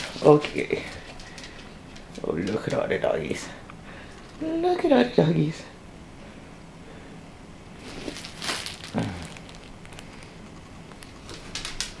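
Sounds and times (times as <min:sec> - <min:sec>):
claws ticking on vinyl floor: 0:00.0 - 0:03.2, 0:09.3 - 0:12.0
dogs rustling on vinyl floor: 0:00.0 - 0:03.6, 0:07.8 - 0:12.0
dog low grunt: 0:08.9 - 0:09.5.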